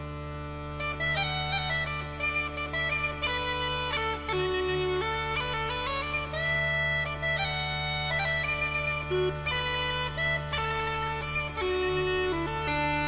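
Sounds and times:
bagpipe music: 0.0s - 13.0s.

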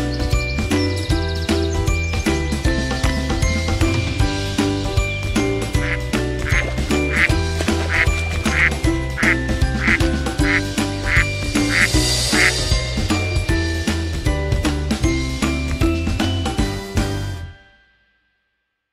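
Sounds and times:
light jingly background music: 0.0s - 18.4s
duck quacks: 5.8s - 12.6s.

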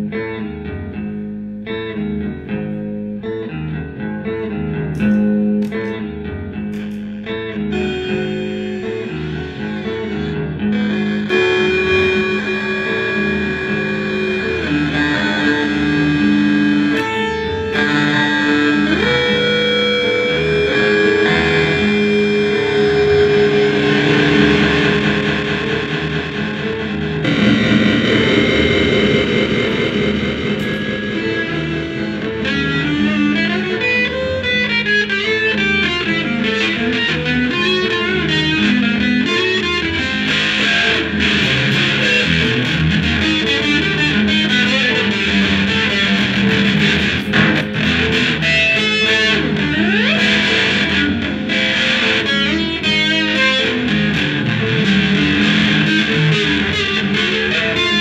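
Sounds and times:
electric guitar drone: 0.0s - 58.0s
picked guitar notes: 0.0s - 58.0s.

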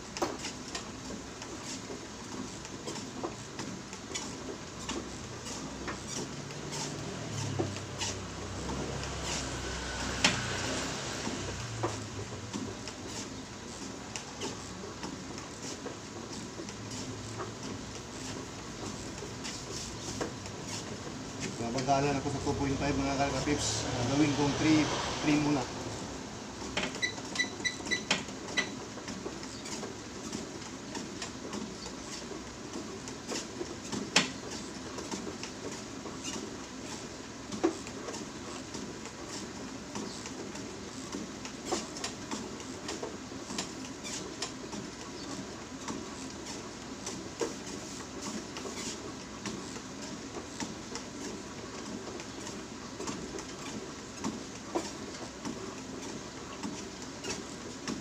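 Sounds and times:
footfalls on treadmill belt: 0.0s - 22.2s, 26.6s - 58.0s
treadmill belt and motor noise: 0.0s - 58.0s
treadmill console beeps: 26.8s - 29.8s.

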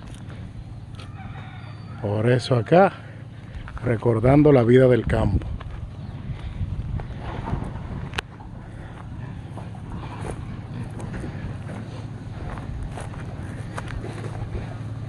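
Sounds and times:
vehicle engine idling: 0.0s - 15.0s.

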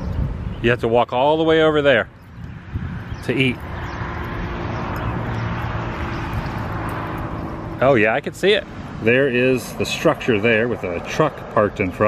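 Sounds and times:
outdoor noise: 0.0s - 12.0s
low engine hum: 2.0s - 12.0s.

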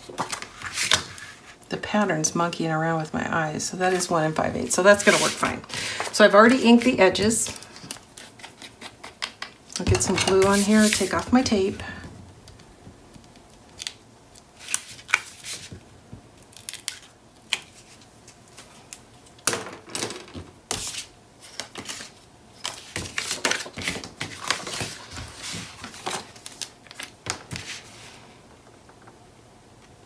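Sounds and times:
paper rustling: 4.9s - 6.1s, 9.9s - 11.3s, 20.7s - 28.2s.

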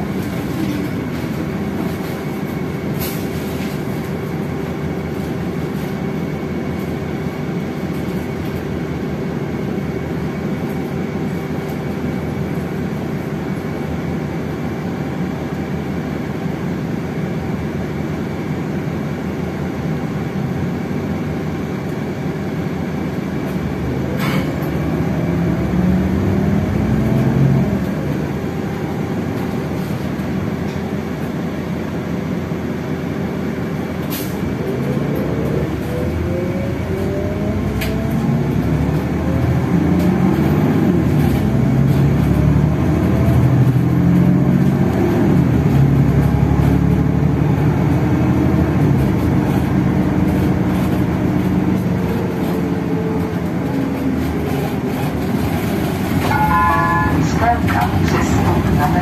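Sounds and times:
bus engine running: 0.0s - 59.0s
road and tyre noise: 0.0s - 59.0s.

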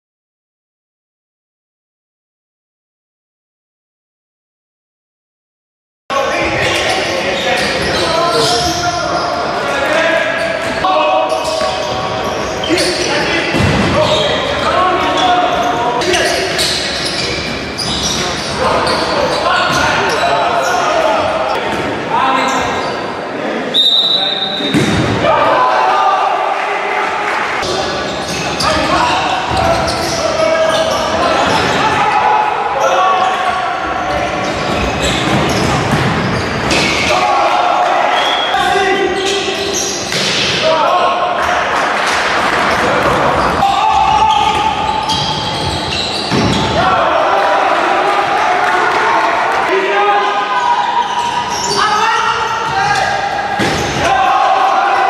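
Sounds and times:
players shouting: 23.6s - 55.0s.

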